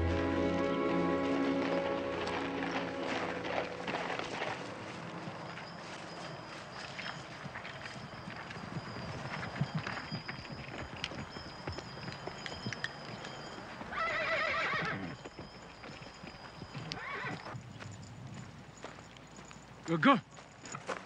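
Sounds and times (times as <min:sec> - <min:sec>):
horse hooves walking on ground: 0:00.0 - 0:21.0
horse neighing: 0:13.9 - 0:15.1, 0:17.0 - 0:17.6.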